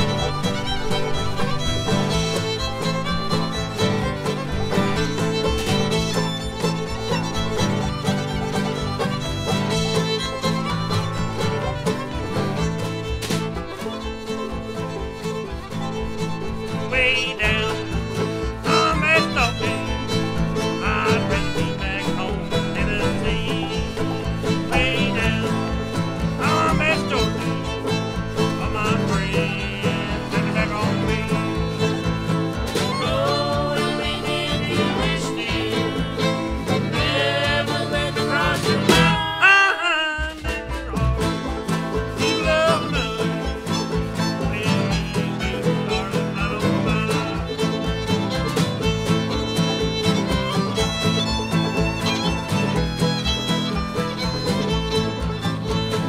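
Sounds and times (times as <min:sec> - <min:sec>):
banjo: 0:00.0 - 0:56.0
fiddle: 0:00.0 - 0:56.0
string band music: 0:00.0 - 0:56.0
washtub bass: 0:00.0 - 0:56.0.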